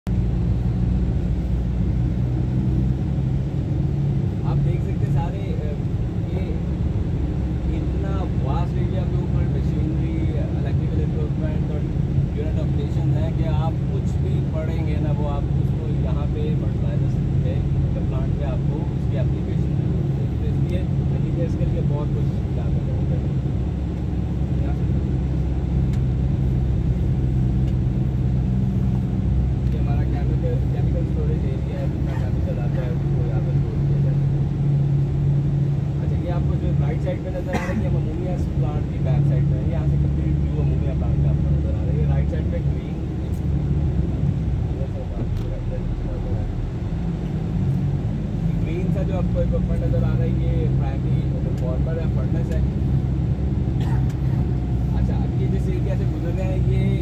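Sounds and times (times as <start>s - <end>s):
low mechanical drone: 0.0s - 57.0s.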